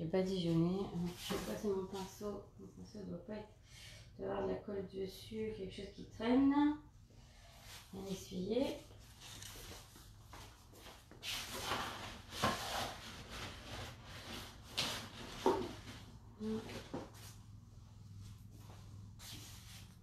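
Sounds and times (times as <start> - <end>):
paintbrush rubbing and rustling: 17.1 - 20.0.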